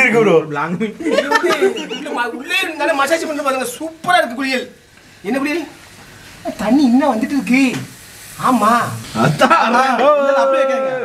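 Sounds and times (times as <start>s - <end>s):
bath foam crackling hiss: 1.0s - 10.9s.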